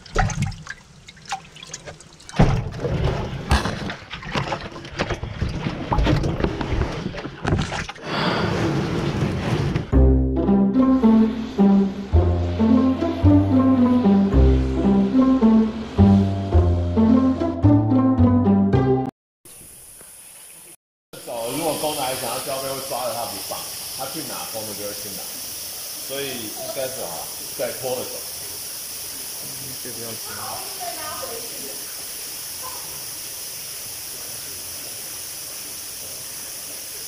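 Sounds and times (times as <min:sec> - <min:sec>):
water splashing in a plastic tub: 0:00.0 - 0:08.0
steady high hiss: 0:10.9 - 0:16.0, 0:19.5 - 0:37.0
people talking: 0:21.2 - 0:25.3, 0:26.1 - 0:28.3, 0:29.4 - 0:31.8.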